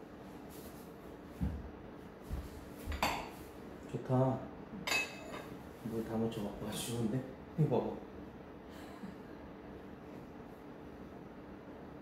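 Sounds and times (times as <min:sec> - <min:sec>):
glass clinks: 0:04.9 - 0:05.4.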